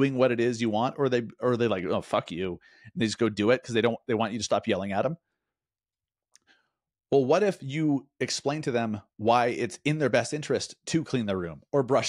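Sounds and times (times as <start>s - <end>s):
man speaking: 0.0s - 5.2s, 7.1s - 12.0s.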